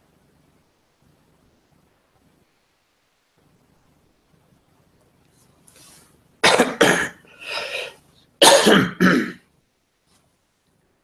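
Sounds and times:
man coughing: 6.4s - 7.2s, 8.4s - 9.4s.

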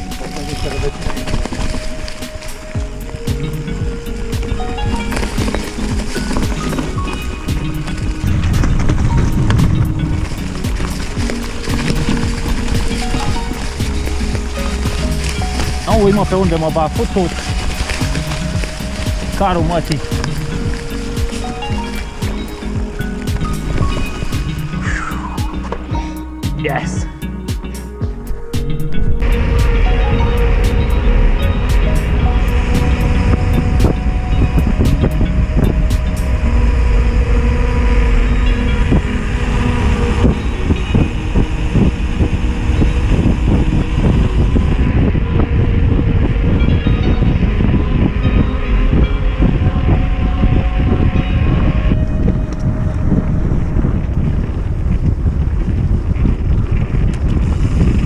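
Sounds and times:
heavy wind rumbling on microphone: 0.0s - 58.0s.

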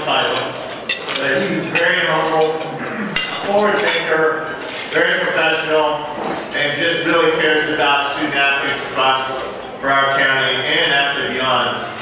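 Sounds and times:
cutlery and plates clinking: 0.0s - 7.2s
man speaking into a microphone: 0.0s - 12.0s.

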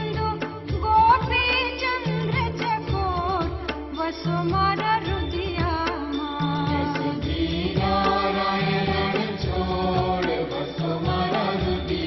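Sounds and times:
devotional chanting: 4.8s - 12.0s.

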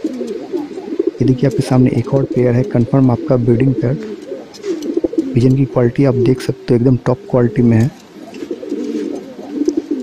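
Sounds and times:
pigeon cooing: 0.0s - 10.0s.

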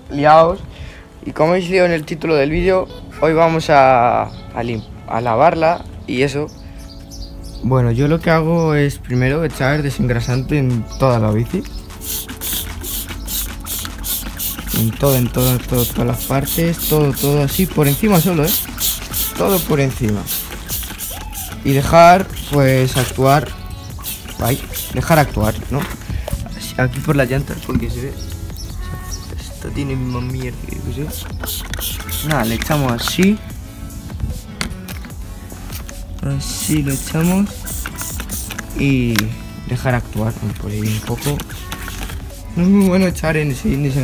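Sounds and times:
background music: 0.0s - 44.0s
spray bottle squirting: 11.8s - 28.0s, 30.0s - 33.5s, 34.3s - 39.4s, 40.4s - 43.1s
camera handling rumble: 40.5s - 42.4s.

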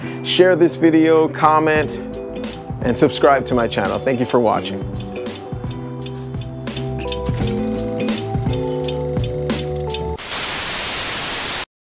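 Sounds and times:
background music: 0.0s - 10.2s
static noise hiss: 10.0s - 11.7s.

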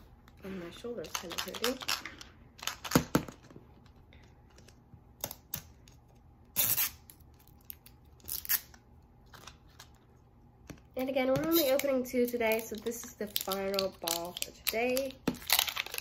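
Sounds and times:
plastic wrapping crinkling and tearing: 6.6s - 10.0s, 11.5s - 16.0s.

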